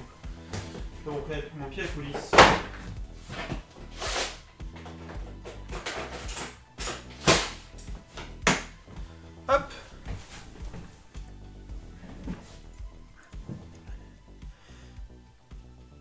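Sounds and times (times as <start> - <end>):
soft background music: 0.0 - 16.0.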